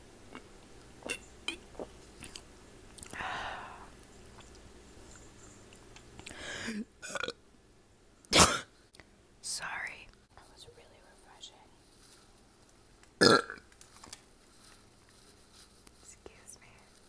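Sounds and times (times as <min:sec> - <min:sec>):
burps: 0:00.3 - 0:01.9, 0:07.0 - 0:07.4, 0:13.2 - 0:13.7
whispered mouth sounds: 0:16.0 - 0:17.0.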